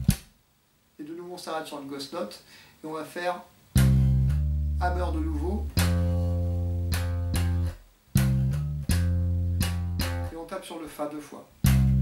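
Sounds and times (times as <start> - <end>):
slap electric bass: 0.0 - 0.3, 3.8 - 10.3, 11.6 - 12.0.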